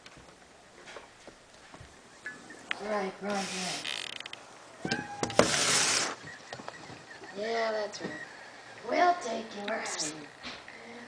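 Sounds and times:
close rustling burst: 3.3 - 4.3, 5.4 - 6.4.

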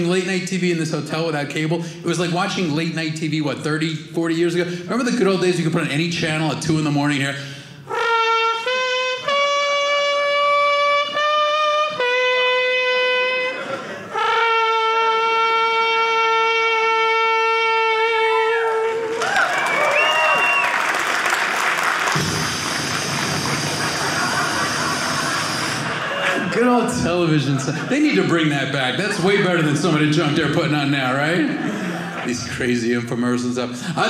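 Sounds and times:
man imitating trumpet: 7.8 - 19.2
steady hiss: 22.1 - 26.8
loud noise with gliding sounds: 22.2 - 26.3.

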